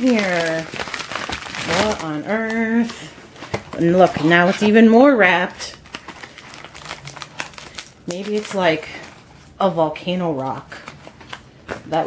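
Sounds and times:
wrapping crinkling: 0.0 - 12.0.

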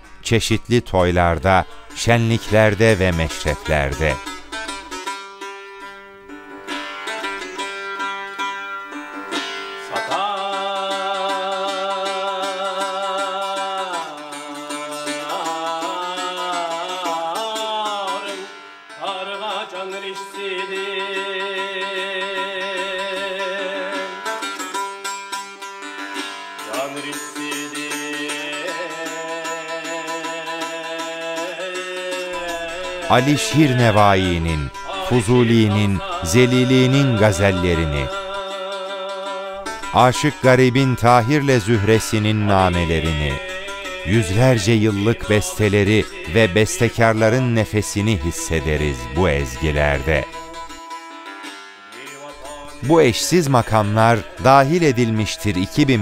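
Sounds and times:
man singing with vibrato: 0.0 - 4.9, 9.8 - 24.6, 26.6 - 51.0, 51.9 - 56.0
plucked long-necked lute: 0.0 - 56.0.

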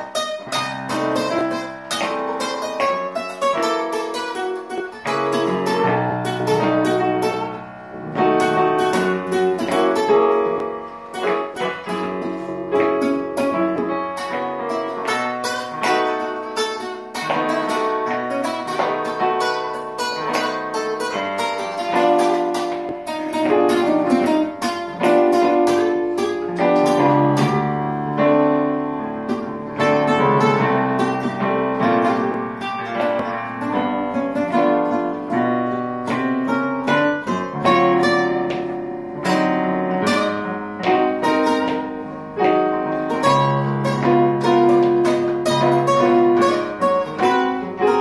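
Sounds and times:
guitar playing blues: 0.0 - 48.0.

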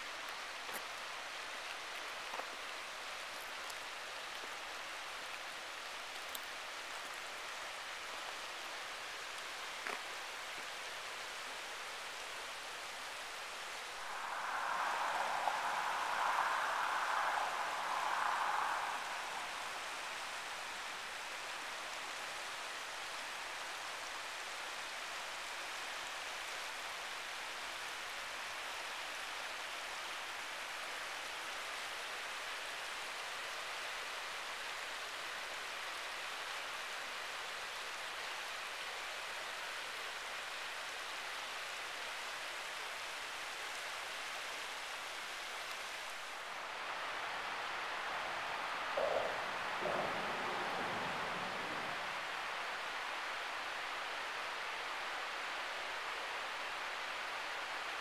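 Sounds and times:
creek flowing over rocks: 0.0 - 58.0.

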